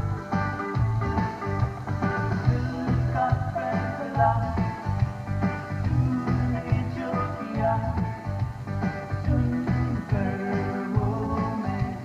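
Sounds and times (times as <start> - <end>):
bass guitar: 0.0 - 12.0
electric guitar: 0.0 - 12.0
keyboards: 0.0 - 12.0.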